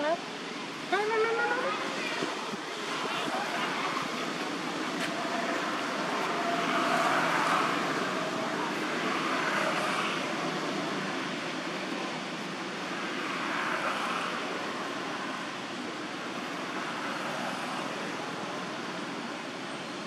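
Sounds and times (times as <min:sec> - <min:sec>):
outdoor background wash: 0:00.0 - 0:20.0.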